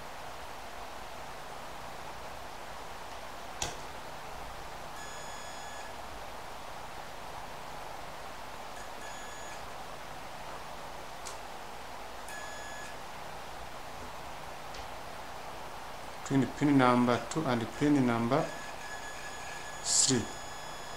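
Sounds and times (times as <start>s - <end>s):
multimeter continuity beeps: 5.0s - 6.0s, 8.8s - 9.6s, 12.3s - 13.0s, 17.9s - 20.9s.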